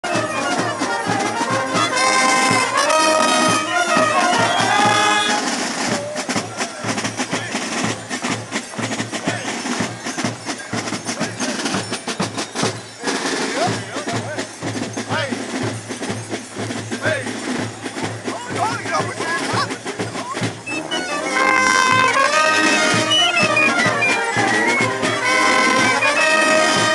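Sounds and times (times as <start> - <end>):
brass band playing: 0.0 - 26.9
crowd voices: 0.0 - 26.9
drumbeats: 0.0 - 26.9.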